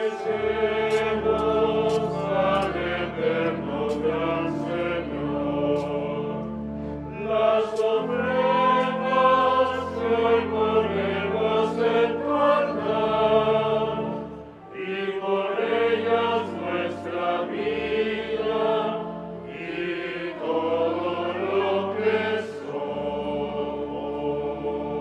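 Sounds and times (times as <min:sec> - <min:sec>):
choir singing a hymn: 0:00.0 - 0:25.0
held low accompaniment: 0:00.0 - 0:25.0.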